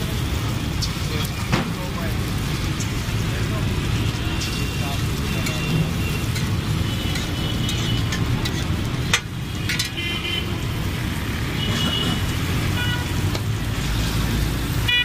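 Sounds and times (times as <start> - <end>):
batter frying on griddle: 0.0 - 15.0
traffic rumble: 0.0 - 15.0.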